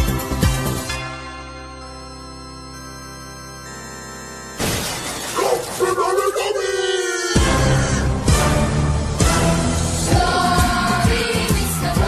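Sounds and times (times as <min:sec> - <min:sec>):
electronic keyboard chord: 0:00.0 - 0:05.3
loud smashing crash: 0:04.6 - 0:05.8
busy music with bending sounds: 0:07.2 - 0:12.0.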